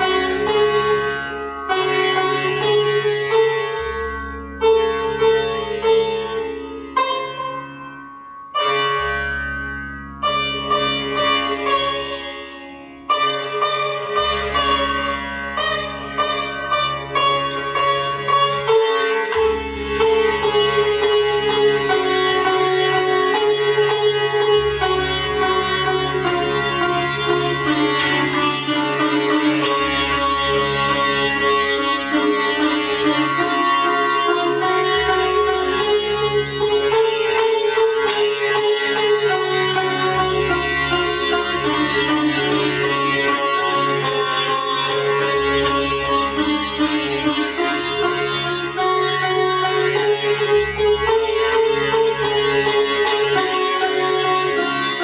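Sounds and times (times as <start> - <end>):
sitar melody over drone: 0.0 - 55.0.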